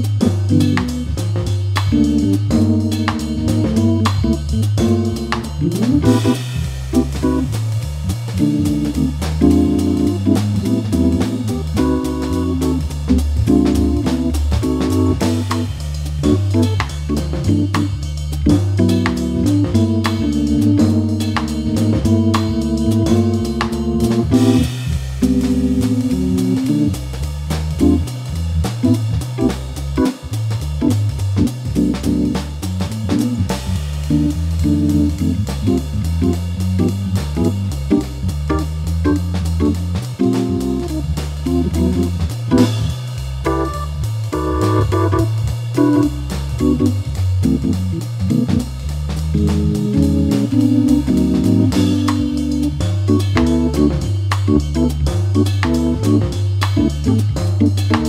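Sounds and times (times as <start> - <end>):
drums swinging on cymbals: 0.0 - 58.0
hammond organ jazz playing: 0.0 - 58.0.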